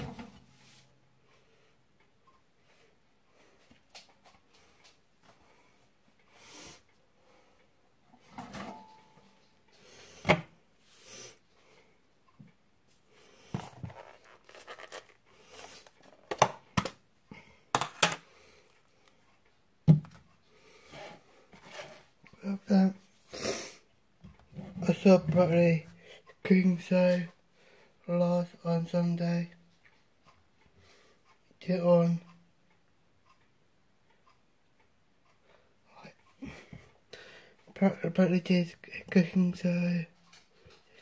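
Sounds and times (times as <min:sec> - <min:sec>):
wall clock ticking: 0:00.4 - 0:10.8, 0:11.4 - 0:13.6, 0:15.1 - 0:41.0
plastic lid clicking and crackling: 0:16.0 - 0:17.0.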